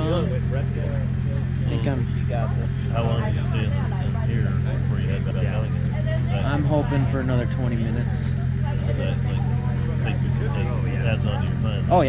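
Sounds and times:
generator engine droning: 0.0 - 12.0
people talking: 0.0 - 12.0.

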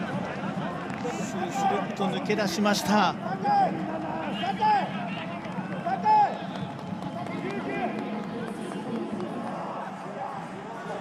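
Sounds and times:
stadium background noise: 0.0 - 11.0.

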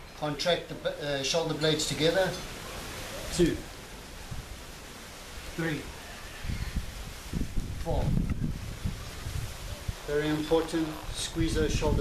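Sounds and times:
leaves rustling: 0.0 - 12.0
wind rumble on microphone: 6.4 - 12.0.

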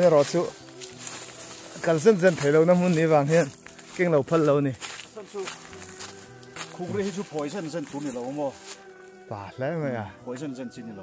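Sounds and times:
man talking: 0.0 - 0.6, 1.8 - 5.6, 6.7 - 11.0.

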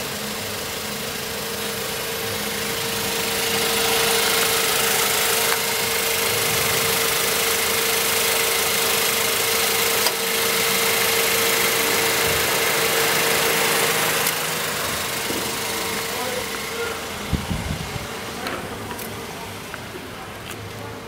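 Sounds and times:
car engine idling with whine: 0.0 - 21.0.

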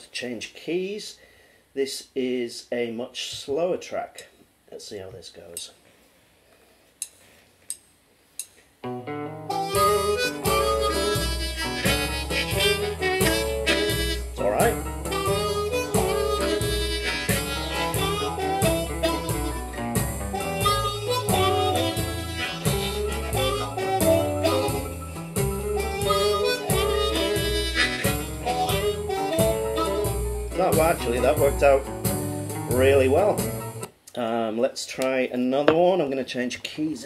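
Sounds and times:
slow backing track with bass line: 8.4 - 34.2
blues harmonica: 9.3 - 33.9.

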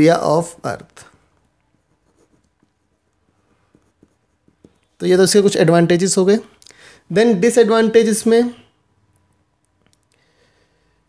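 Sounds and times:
pen writing on paper: 1.7 - 4.9.

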